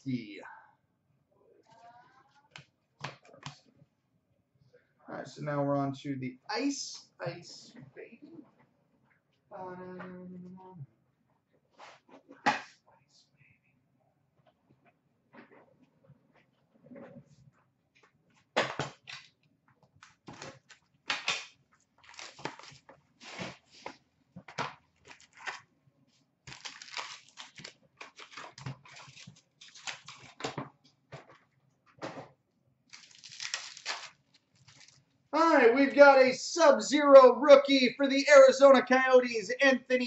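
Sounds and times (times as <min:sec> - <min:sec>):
cardboard and wrapper tearing: 0:22.0 - 0:23.6, 0:25.0 - 0:25.7, 0:26.5 - 0:30.5, 0:32.9 - 0:35.0.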